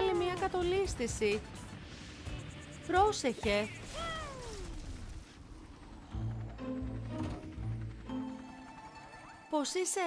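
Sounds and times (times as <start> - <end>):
cartoon character wailing: 3.9 - 4.8.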